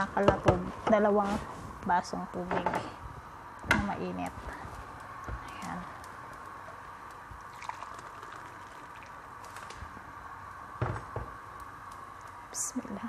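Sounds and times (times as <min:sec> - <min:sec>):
knock: 0:10.8 - 0:11.3.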